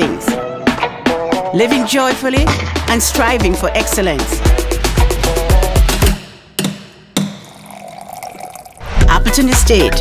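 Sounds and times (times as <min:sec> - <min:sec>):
mallet striking chisel into wood: 0:06.6 - 0:07.5
liquid trickling into glass: 0:07.3 - 0:08.9.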